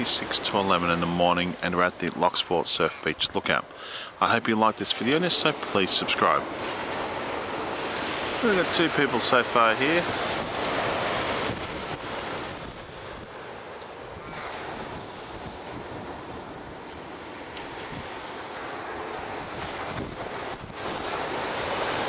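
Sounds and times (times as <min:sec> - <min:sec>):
distant surf waves breaking: 0:00.0 - 0:22.0
wind on microphone: 0:10.0 - 0:13.4, 0:19.2 - 0:22.0.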